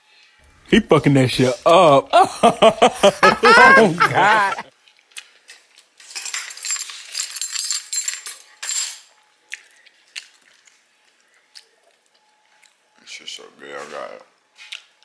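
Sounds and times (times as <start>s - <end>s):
rustling with light clinks: 5.5s - 9.1s.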